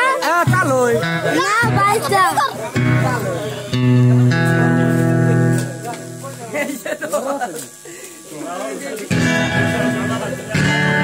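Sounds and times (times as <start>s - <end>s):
electronic keyboard chords: 0.0s - 7.5s, 8.6s - 11.0s
person speaking: 0.0s - 11.0s.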